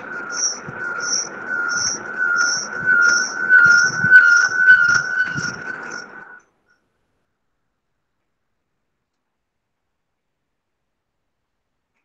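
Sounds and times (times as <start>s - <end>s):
steady high alarm tone: 0.0s - 6.4s.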